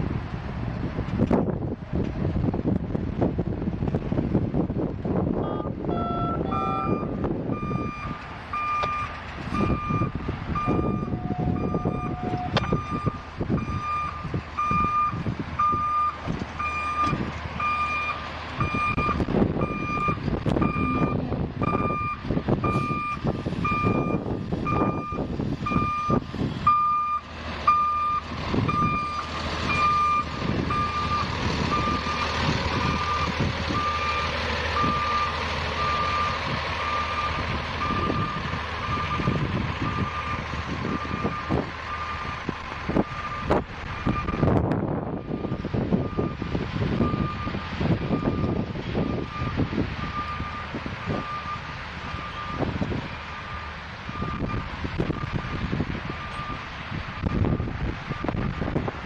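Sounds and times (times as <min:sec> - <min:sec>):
truck running noise: 0:00.0 - 0:59.0
truck backup alarm beeping: 0:05.4 - 0:58.8.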